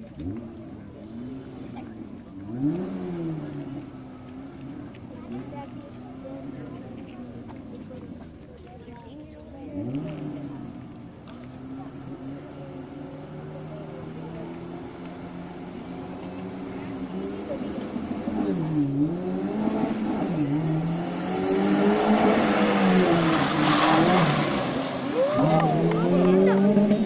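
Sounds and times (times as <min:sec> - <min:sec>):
rally car engine: 0:00.0 - 0:27.0
tyre noise rush: 0:19.2 - 0:27.0.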